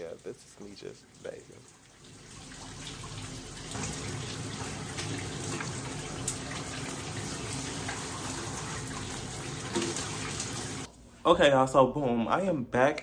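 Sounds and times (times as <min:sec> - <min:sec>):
shower running: 0:00.0 - 0:10.9.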